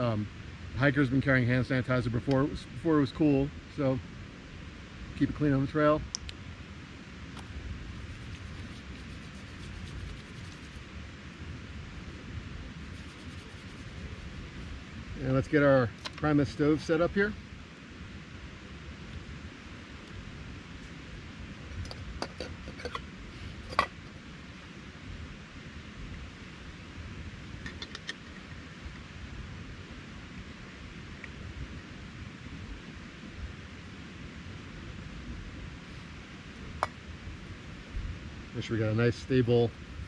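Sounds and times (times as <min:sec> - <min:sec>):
steady background hiss: 0:00.0 - 0:40.0.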